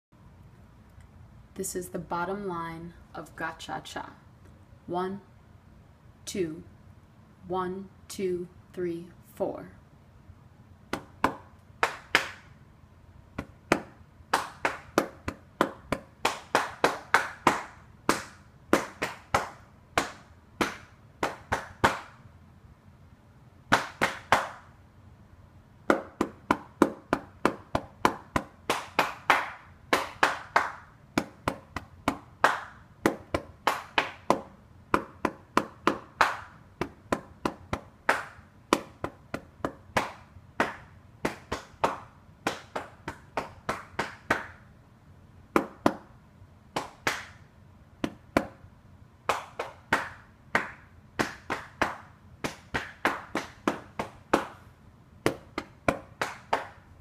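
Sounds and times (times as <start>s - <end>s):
hand claps in uneven rhythm: 10.9s - 12.6s, 13.4s - 22.2s, 23.7s - 24.7s, 25.9s - 44.6s, 45.5s - 46.1s, 46.7s - 47.4s, 48.0s - 48.6s, 49.3s - 54.6s, 55.2s - 56.9s.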